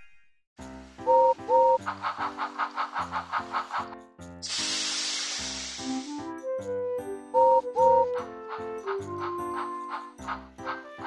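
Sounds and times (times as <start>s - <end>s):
background music: 0.6s - 11.0s
steam locomotive chuffing: 0.7s - 6.2s, 8.0s - 11.0s
loud hiss of steam: 1.8s - 6.3s
steam whistle toots: 4.5s - 6.3s.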